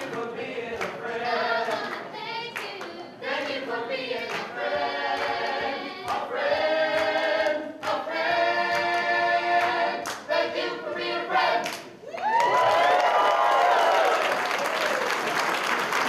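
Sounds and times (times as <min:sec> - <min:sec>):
voices singing in harmony: 0:00.0 - 0:11.9.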